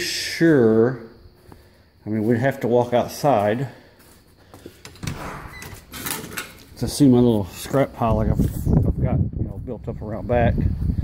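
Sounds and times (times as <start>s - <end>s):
door scraping open: 4.8s - 6.8s.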